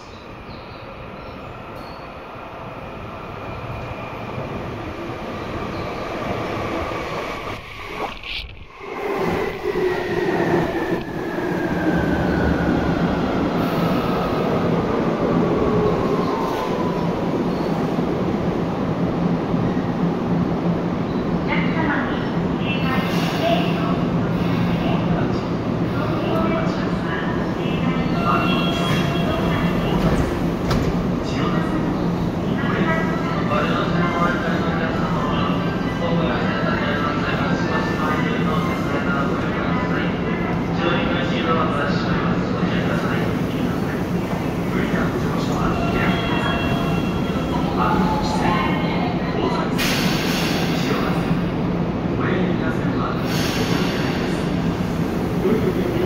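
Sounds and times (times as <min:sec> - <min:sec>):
train rumble: 0:03.0 - 0:56.0.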